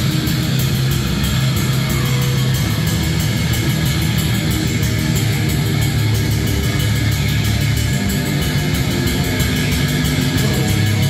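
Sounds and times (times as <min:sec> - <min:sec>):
bass guitar: 0:00.0 - 0:11.0
distorted electric guitar: 0:00.0 - 0:11.0
drum kit: 0:00.0 - 0:11.0
heavy metal band playing live: 0:00.0 - 0:11.0.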